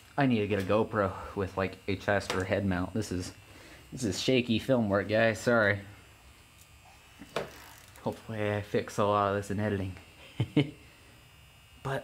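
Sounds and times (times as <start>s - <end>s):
electrical hum and buzz: 0.0s - 12.0s.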